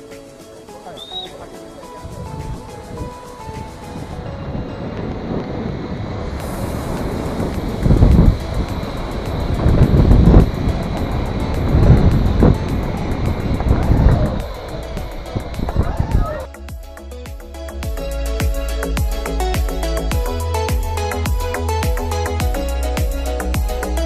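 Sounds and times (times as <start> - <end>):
background music: 0.0 - 24.0
wind buffeting microphone: 1.1 - 16.5.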